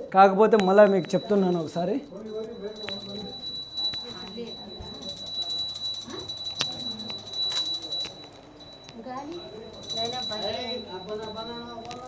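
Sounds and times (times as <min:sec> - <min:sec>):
faint voices: 0:00.0 - 0:12.0
high-pitched ringing: 0:00.0 - 0:12.0.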